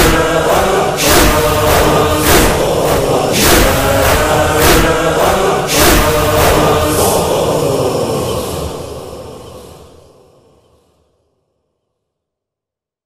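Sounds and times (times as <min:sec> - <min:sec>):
heavy echoing beats: 0:00.0 - 0:10.3
chorus chanting a lament: 0:00.0 - 0:10.6.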